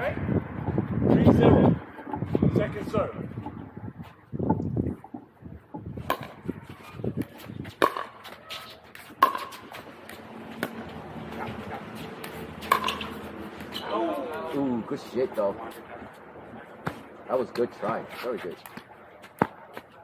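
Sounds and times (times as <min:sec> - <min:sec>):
paddles hitting plastic ball: 0:07.2 - 0:10.9.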